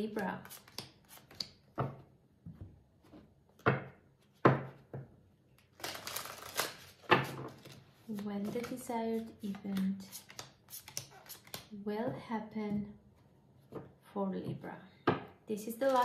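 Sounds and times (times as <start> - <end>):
cards shuffling: 0.4 - 1.6, 5.6 - 11.7
person speaking: 8.1 - 10.3.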